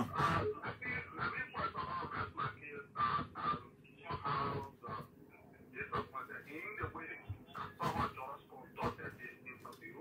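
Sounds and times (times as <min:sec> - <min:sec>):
caller talking over phone line: 0:03.9 - 0:10.0.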